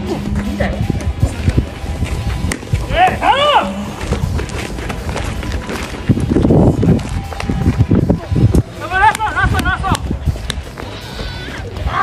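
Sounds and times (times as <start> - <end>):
running footsteps on dirt: 0.0 - 11.9.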